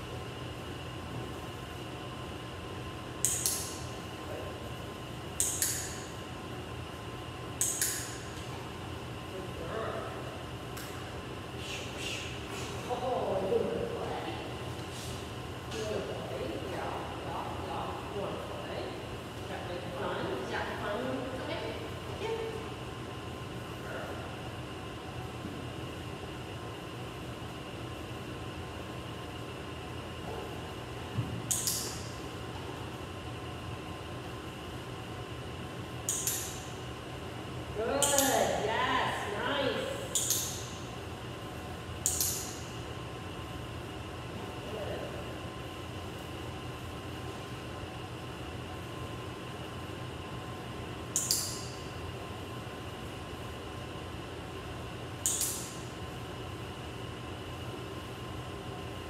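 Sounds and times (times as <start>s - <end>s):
room hum: 0.0s - 59.0s.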